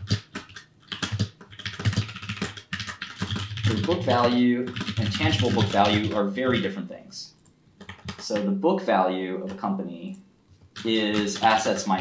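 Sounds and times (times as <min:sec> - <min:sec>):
typing on computer keyboard: 0:00.0 - 0:06.7, 0:07.8 - 0:08.5, 0:10.6 - 0:12.0.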